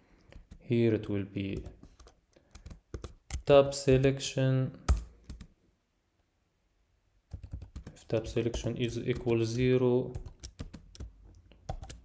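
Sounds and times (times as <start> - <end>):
typing on computer keyboard: 0.2 - 0.7, 1.5 - 3.5, 4.9 - 5.5, 7.3 - 12.0.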